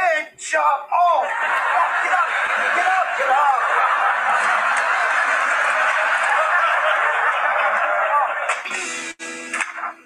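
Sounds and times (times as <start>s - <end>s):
studio audience laughing: 1.2s - 8.8s.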